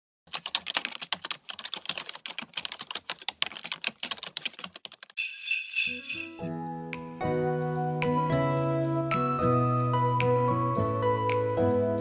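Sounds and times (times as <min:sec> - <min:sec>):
keyboard typing: 0:00.3 - 0:05.3
shimmering jingle chime: 0:05.2 - 0:06.6.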